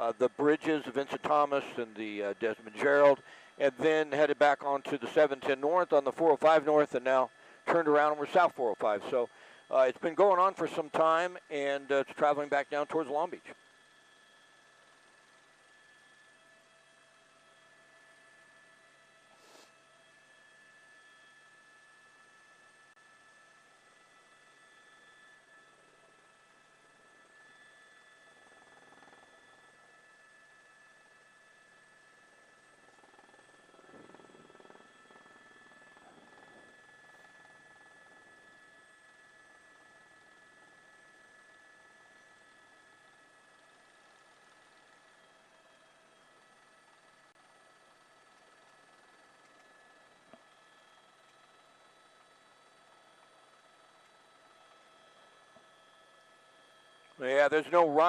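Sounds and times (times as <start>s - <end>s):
faint electronic hum of held tones: 0.0s - 58.0s.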